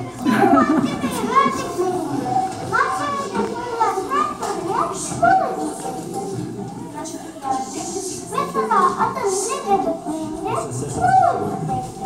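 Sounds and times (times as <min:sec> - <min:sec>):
child speaking: 0:00.3 - 0:06.0, 0:07.0 - 0:12.0.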